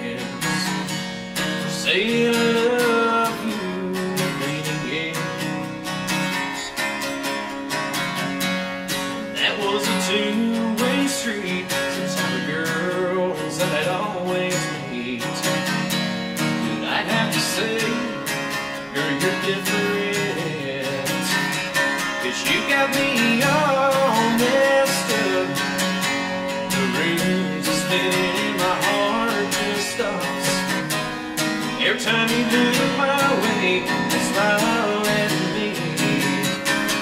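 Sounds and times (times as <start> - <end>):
man singing: 0.0 - 7.1, 9.1 - 37.0
acoustic guitar strumming: 0.0 - 37.0.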